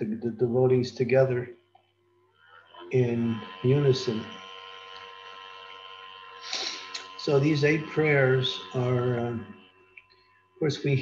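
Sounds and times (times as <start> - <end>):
background hum of held tones: 0.0 - 11.0
breathy intake of breath: 6.4 - 7.0.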